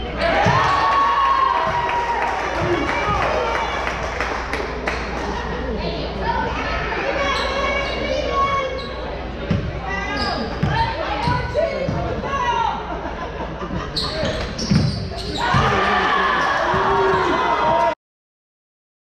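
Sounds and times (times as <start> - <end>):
people shouting in gym: 15.3 - 18.0.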